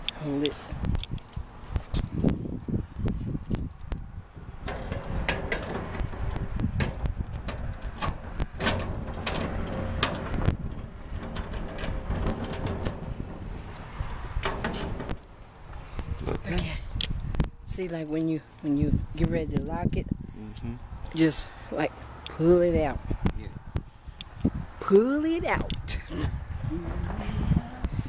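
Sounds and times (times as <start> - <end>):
steady low rumble: 0.7 - 17.7
padlock metallic clicks and rattles: 0.9 - 13.2.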